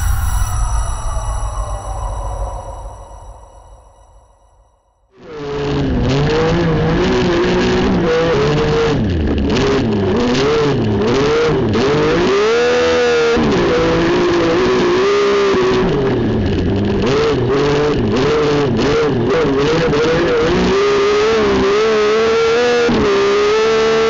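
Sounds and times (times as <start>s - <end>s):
racing car engine revving: 5.2s - 24.0s.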